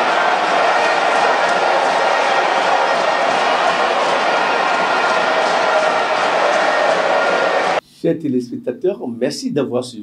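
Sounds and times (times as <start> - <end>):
stadium crowd cheering: 0.0 - 7.8.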